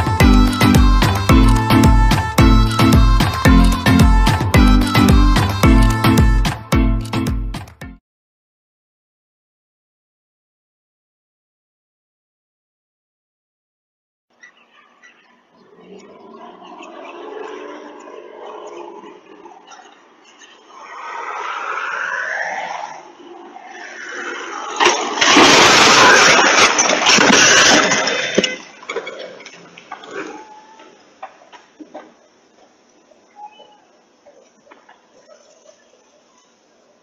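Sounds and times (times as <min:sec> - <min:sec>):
loud crash and fireball rush: 0:24.9 - 0:27.8.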